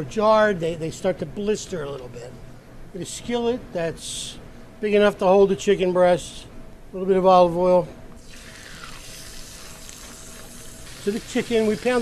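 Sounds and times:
skillet sizzling: 8.2s - 12.0s.

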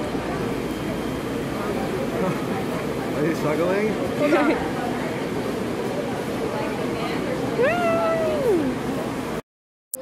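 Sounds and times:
crowd chatter: 0.0s - 9.4s.

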